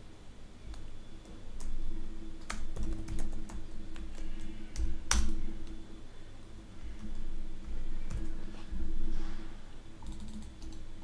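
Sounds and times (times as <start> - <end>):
keyboard typing: 0.7 - 5.8, 6.8 - 8.4, 10.0 - 10.9.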